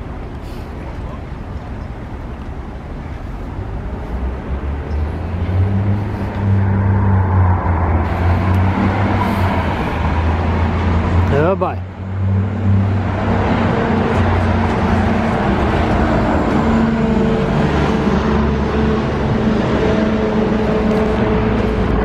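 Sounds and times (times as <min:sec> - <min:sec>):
street traffic: 0:00.0 - 0:22.0.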